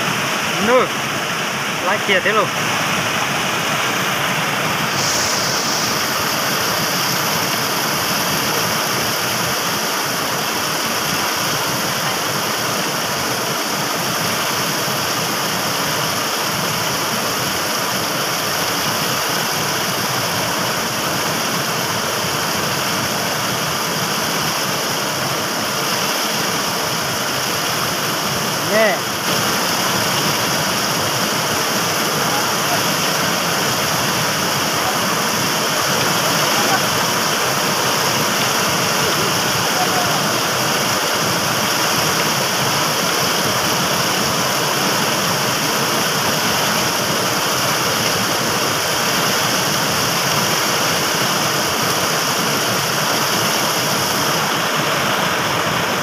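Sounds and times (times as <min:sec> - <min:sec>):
fast-flowing water rushing: 0:00.0 - 0:56.0.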